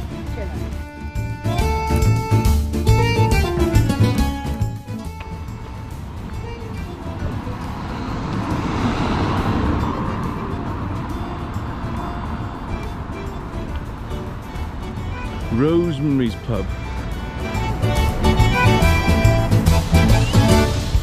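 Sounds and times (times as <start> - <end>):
background music: 0.0 - 21.0
vehicle driving past: 5.5 - 15.4.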